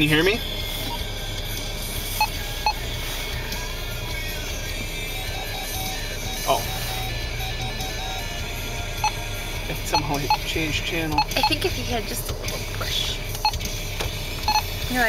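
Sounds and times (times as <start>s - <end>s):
vehicle idling hum: 0.0s - 15.0s
radio electronic beeps: 2.2s - 3.0s, 5.1s - 8.4s, 9.0s - 11.7s, 14.5s - 14.8s.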